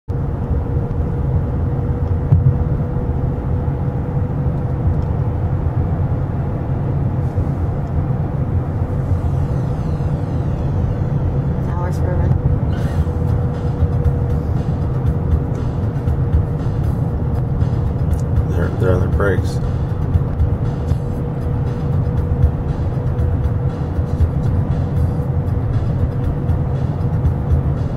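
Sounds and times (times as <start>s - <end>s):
constant hum: 0.1s - 27.9s
engine and tyre rumble: 0.1s - 27.9s.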